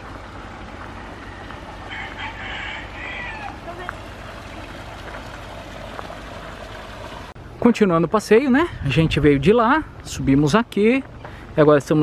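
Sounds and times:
outdoor background noise: 0.0 - 12.0
farmyard fowl call: 1.3 - 3.9.

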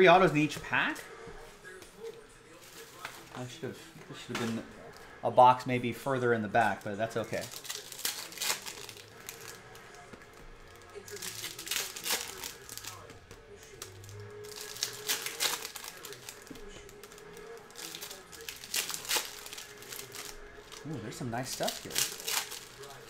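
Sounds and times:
foil wrappers tearing and crinkling: 6.6 - 23.0.

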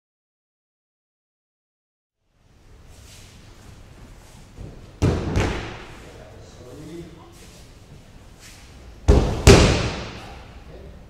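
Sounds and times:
body thudding on mats: 4.6 - 5.8, 9.1 - 10.1.

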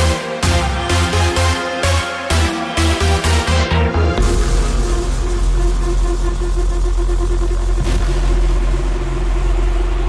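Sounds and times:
electronic dance music: 0.0 - 9.7
deep rumbling bass: 2.3 - 10.0.

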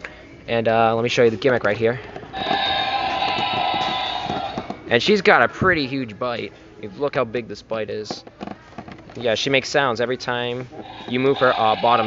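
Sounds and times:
toy dinosaur electronic roar: 2.3 - 4.7, 10.8 - 12.0.

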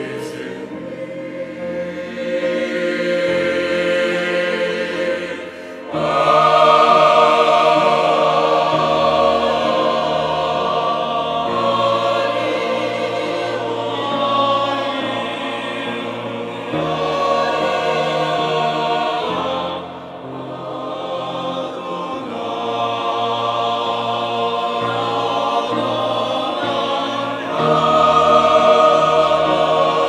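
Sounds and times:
mixed choir singing a hymn: 0.0 - 30.0.

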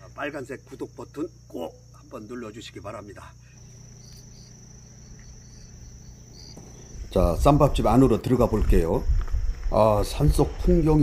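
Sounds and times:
faint low hum: 0.0 - 11.0
high-pitched insect trill: 0.0 - 11.0
short insect chirps: 0.0 - 11.0.

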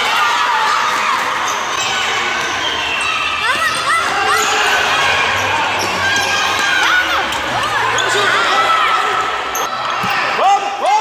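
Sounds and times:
spectators' voices: 0.0 - 11.0
sneakers squeaking on court: 1.4 - 8.7.

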